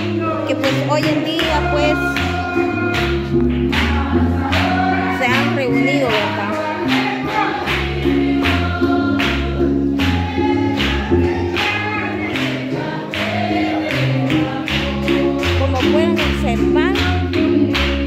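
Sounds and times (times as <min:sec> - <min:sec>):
bass line: 0:00.0 - 0:18.0
people singing: 0:00.0 - 0:18.0
worship music over loudspeakers: 0:00.0 - 0:18.0.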